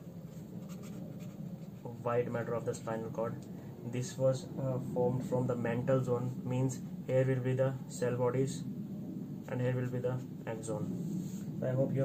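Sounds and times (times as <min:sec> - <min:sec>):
felt-tip pen scratching on paper: 0:00.5 - 0:01.9.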